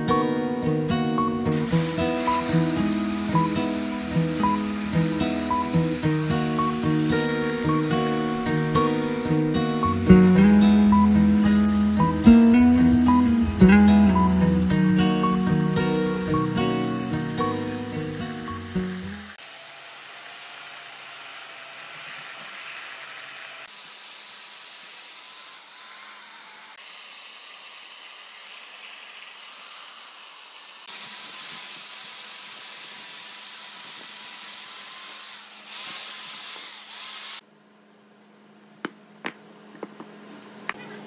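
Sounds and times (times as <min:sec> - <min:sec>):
acoustic guitar music: 0:00.0 - 0:19.3
chainsaw cutting into log: 0:01.5 - 0:37.4.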